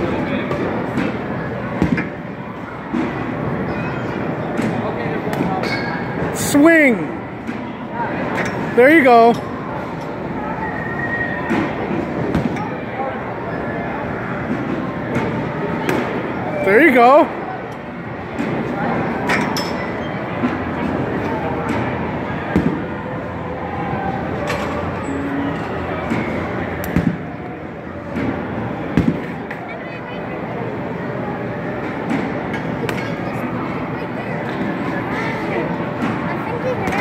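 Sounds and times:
faint voices: 0.0s - 37.0s.

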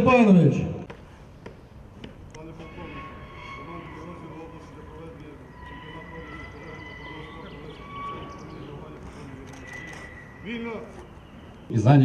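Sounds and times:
murmur of people talking: 0.8s - 12.0s.

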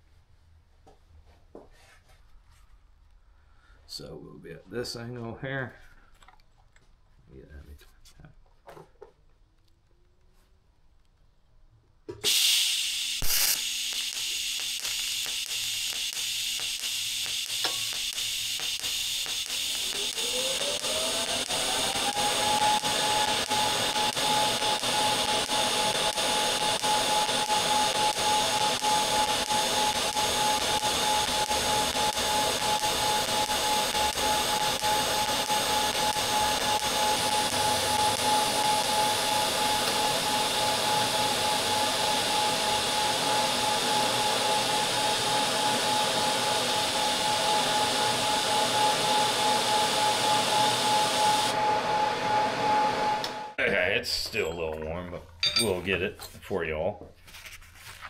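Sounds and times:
welding arc hissing and whining: 12.2s - 53.6s.

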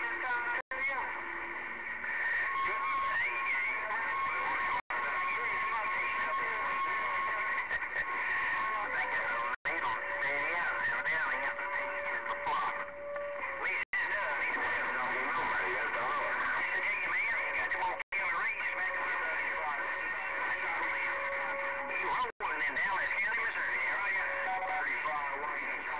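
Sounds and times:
garbled radio voices: 0.0s - 25.9s.

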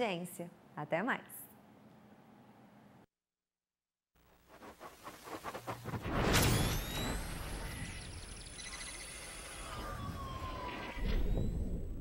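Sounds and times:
electric crackling: 4.5s - 10.9s
electronic whooshes: 4.5s - 12.0s.

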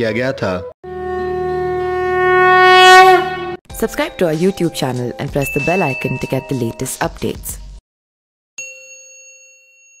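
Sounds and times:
notification bell ding: 5.4s - 6.8s, 8.6s - 10.0s.

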